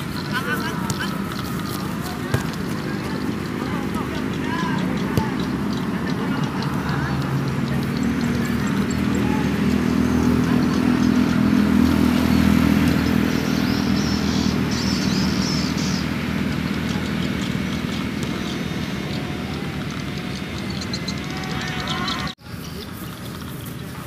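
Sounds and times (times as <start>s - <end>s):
engine droning: 0.0s - 24.0s.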